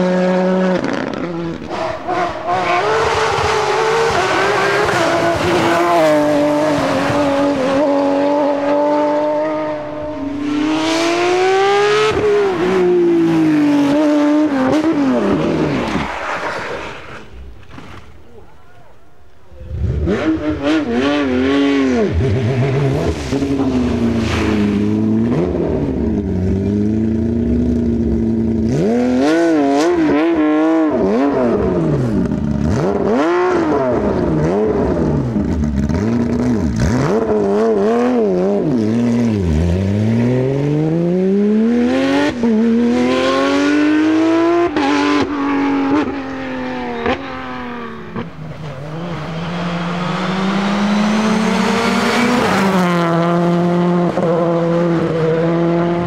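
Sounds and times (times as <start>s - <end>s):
rally car engine revving: 0.0s - 18.5s, 19.4s - 56.0s.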